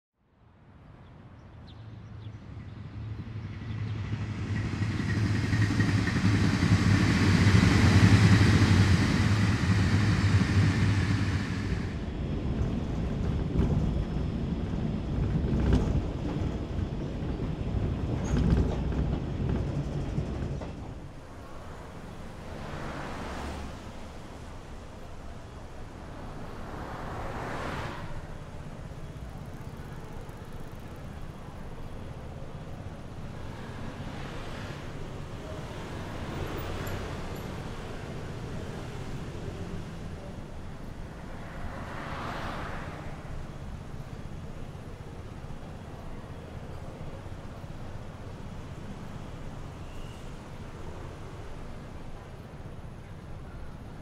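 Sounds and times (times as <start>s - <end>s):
train passing close by: 1.2s - 54.0s
train carriage rumble from inside: 2.0s - 54.0s
wheels clicking over rail joints: 4.2s - 22.3s, 28.5s - 41.6s.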